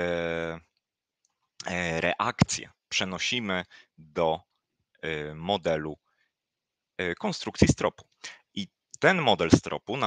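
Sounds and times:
man talking: 0:00.0 - 0:00.6, 0:01.6 - 0:04.4, 0:05.0 - 0:06.0, 0:07.0 - 0:10.0.

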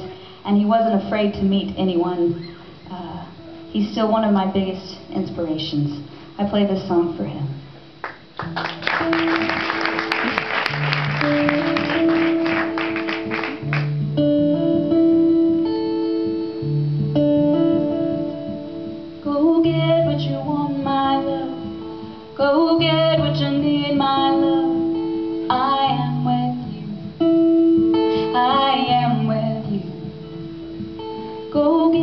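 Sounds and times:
applause: 0:08.0 - 0:14.0
plucked acoustic guitar: 0:08.3 - 0:32.0
sliding melodic phrases: 0:08.9 - 0:19.2.

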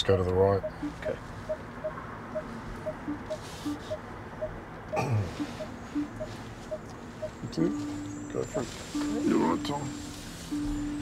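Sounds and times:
parking sensor beeping: 0:00.0 - 0:11.0
lower-pitched beep: 0:00.6 - 0:11.0.

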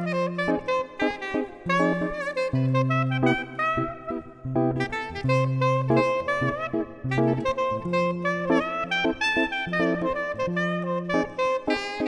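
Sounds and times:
backing of held low notes: 0:00.0 - 0:11.7
soprano saxophone melody: 0:00.0 - 0:12.0.

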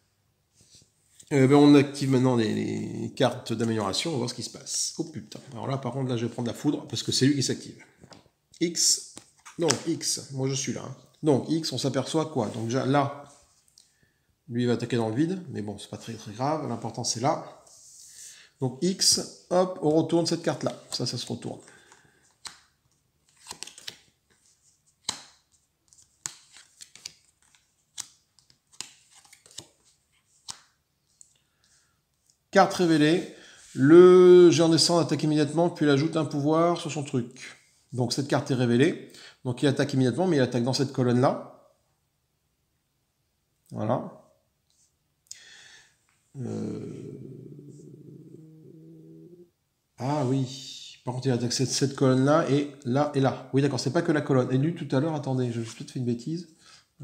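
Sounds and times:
cards sliding rustles: 0:09.1 - 0:10.1, 0:21.8 - 0:31.4
cards snapping on playmat: 0:25.0 - 0:25.4.

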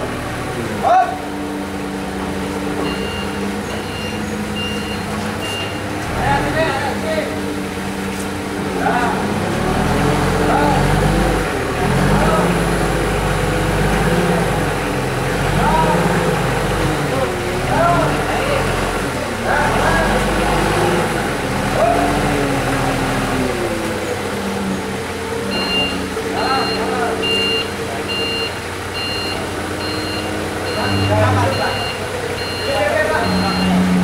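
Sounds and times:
forklift engine running: 0:00.0 - 0:34.0
voices calling out: 0:00.0 - 0:34.0
reversing beeper: 0:02.8 - 0:05.9, 0:25.5 - 0:34.0.

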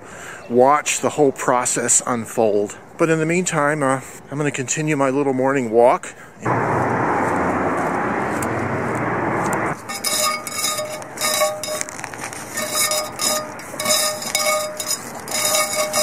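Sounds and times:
loud rushing noise: 0:06.4 - 0:09.9.

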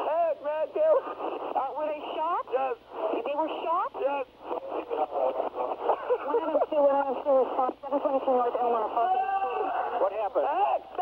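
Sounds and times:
man speaking over telephone line: 0:04.0 - 0:06.0, 0:08.6 - 0:11.0.

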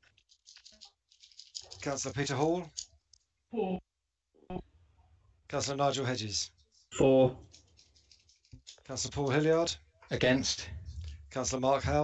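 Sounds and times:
faint quick clicks and rattles: 0:00.0 - 0:03.2, 0:07.4 - 0:09.3
man speaking: 0:01.8 - 0:02.7, 0:05.5 - 0:07.4, 0:08.8 - 0:12.0.

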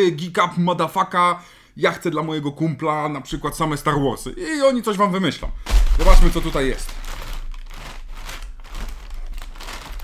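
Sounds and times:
packing paper crinkling and rustling: 0:05.5 - 0:10.0.

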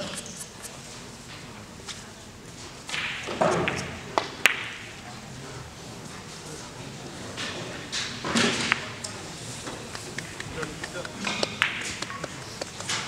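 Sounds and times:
chatter in a large hall: 0:00.0 - 0:13.0
billiard balls clicking: 0:09.9 - 0:13.0.

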